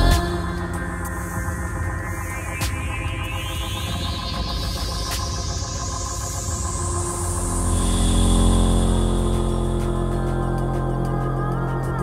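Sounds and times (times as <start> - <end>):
deep bass: 0.0 - 2.0, 7.1 - 12.0
high held tone: 0.0 - 4.3
synthesizer drone chord: 0.0 - 12.0.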